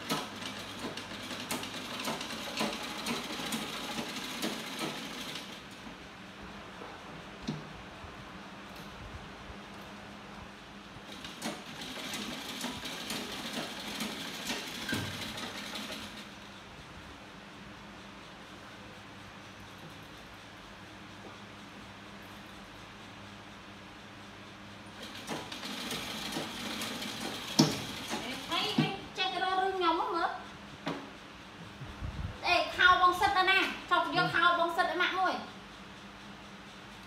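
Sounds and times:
sewing machine stitching: 0:00.0 - 0:05.6, 0:11.1 - 0:16.3, 0:25.0 - 0:28.8
voice: 0:28.2 - 0:30.4, 0:32.4 - 0:35.5.

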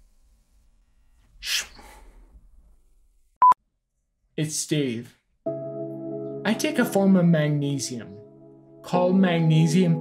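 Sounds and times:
person exhaling sharply: 0:01.4 - 0:02.3.

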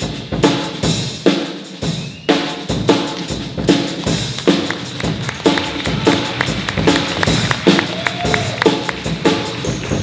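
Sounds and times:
jazz big band playing: 0:00.0 - 0:10.0.

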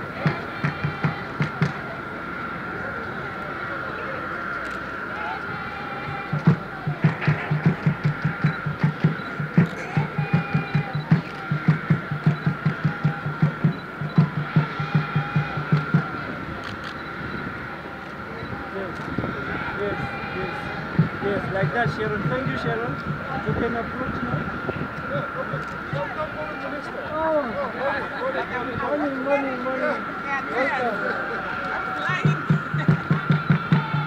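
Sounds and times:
steady drum beat: 0:00.0 - 0:01.8, 0:06.0 - 0:16.5, 0:19.5 - 0:26.4, 0:31.8 - 0:34.0
voices: 0:00.0 - 0:34.0
high-pitched whine: 0:01.8 - 0:34.0.

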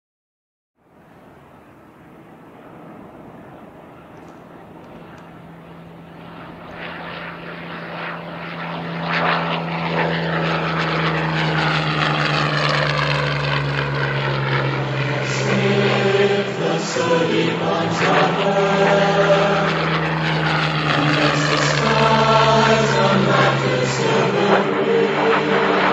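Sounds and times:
propeller aircraft engine droning: 0:00.8 - 0:25.9.

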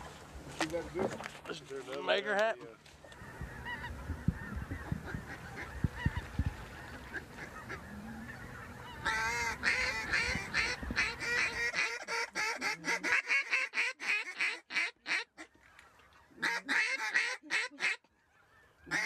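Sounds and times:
faint calling: 0:03.0 - 0:19.0
rapid pitch-bending duck calls: 0:07.1 - 0:15.5, 0:16.4 - 0:19.0.

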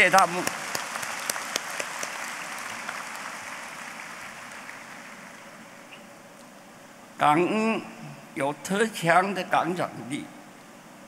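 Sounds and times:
sharp single claps: 0:00.0 - 0:02.3
large audience applauding: 0:00.0 - 0:05.8.

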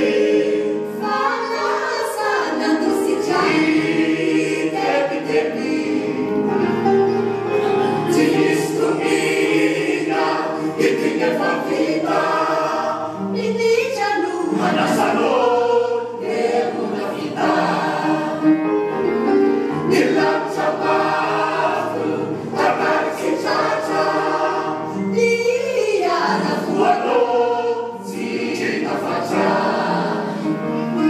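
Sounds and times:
chorus singing theatrical song: 0:00.0 - 0:31.0.

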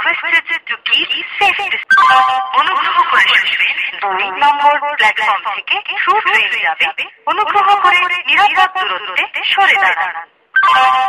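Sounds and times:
station announcement voice: 0:00.0 - 0:11.0.

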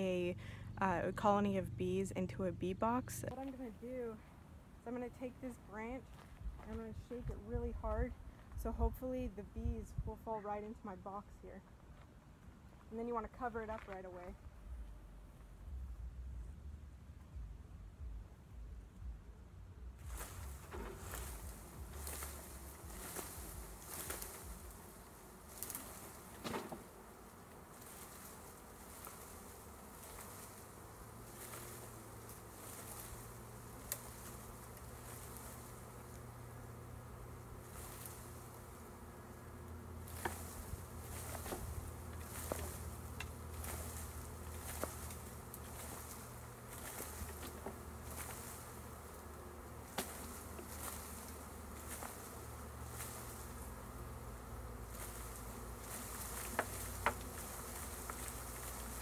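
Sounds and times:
bees buzzing: 0:00.0 - 0:11.4, 0:20.0 - 0:59.0.

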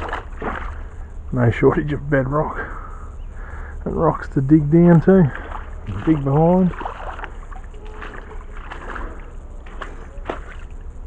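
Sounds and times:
low microphone rumble: 0:00.0 - 0:11.0
water trickling over rocks: 0:04.9 - 0:11.0.

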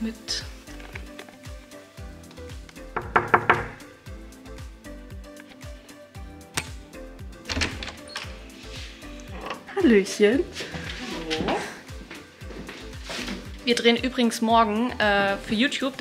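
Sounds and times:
background music with steady beat: 0:00.0 - 0:16.0
knocks on a door: 0:03.0 - 0:03.8.

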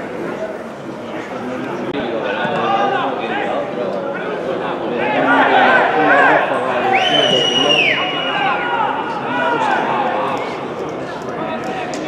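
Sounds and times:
men shouting and calling out: 0:04.9 - 0:10.7.

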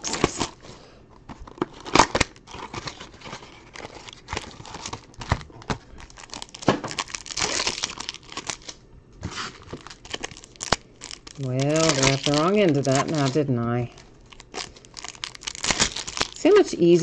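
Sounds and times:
foil wrappers crinkling and tearing: 0:00.0 - 0:16.8.

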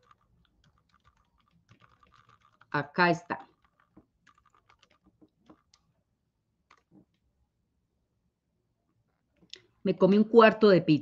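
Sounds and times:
faint typing on computer keyboard: 0:00.0 - 0:07.4.

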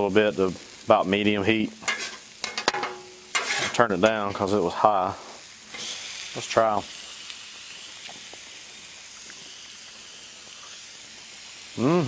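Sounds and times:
vegetables sizzling on a griddle: 0:00.0 - 0:12.0.

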